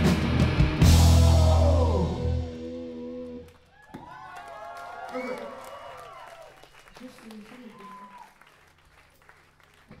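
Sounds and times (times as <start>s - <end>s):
audience applauding: 3.5s - 10.0s.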